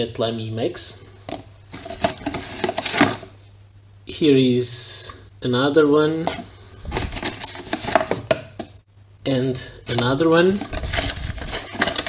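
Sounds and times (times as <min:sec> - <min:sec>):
rummaging in cardboard box: 0:01.7 - 0:03.3, 0:06.3 - 0:08.3, 0:10.5 - 0:12.0.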